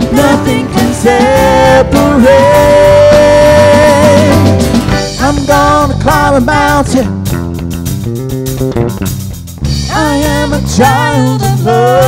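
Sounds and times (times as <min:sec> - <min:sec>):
keyboard: 0:00.0 - 0:07.3
person singing lead vocal: 0:00.0 - 0:07.4, 0:09.8 - 0:12.0
bass guitar: 0:00.0 - 0:12.0
drum kit: 0:00.0 - 0:12.0
guitars: 0:00.0 - 0:12.0.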